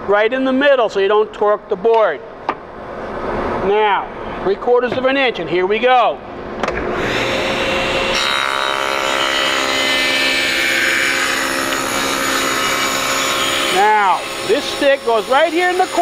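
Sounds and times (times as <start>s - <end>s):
saw motor whine: 6.9s - 16.0s.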